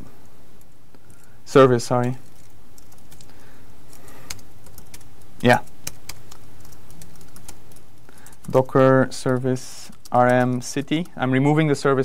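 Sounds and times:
faint background hiss: 0:00.0 - 0:12.0
keyboard typing: 0:02.0 - 0:11.7.

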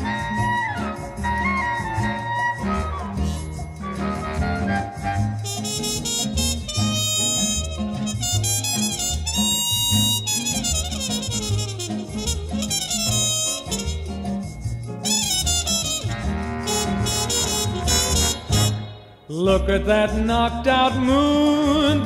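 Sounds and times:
swing big band brass and saxophones: 0:00.0 - 0:14.3, 0:15.0 - 0:19.1.

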